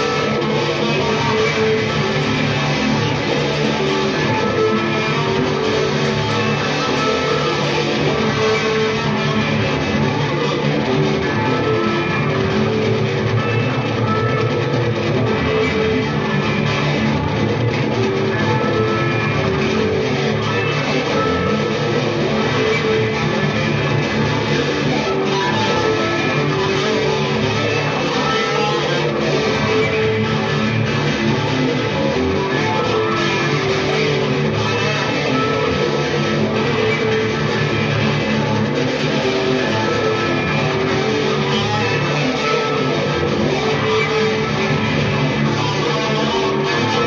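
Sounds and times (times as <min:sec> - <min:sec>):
electric guitar through amplifier: 0:00.0 - 0:47.0.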